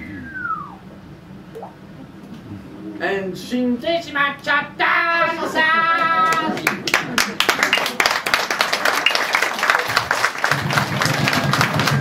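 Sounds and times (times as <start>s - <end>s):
falling whistle from mouth: 0.0s - 0.8s.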